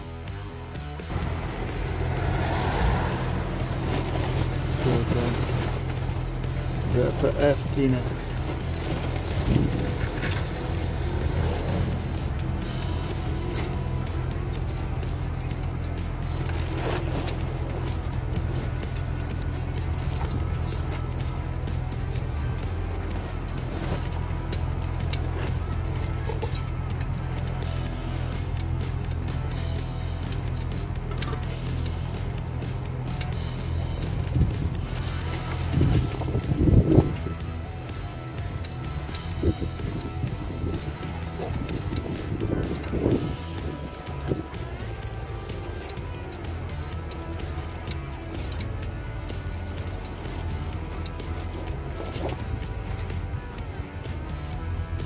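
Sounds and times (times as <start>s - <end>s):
diesel engine idling: 0.0s - 55.0s
music with voice: 0.0s - 55.0s.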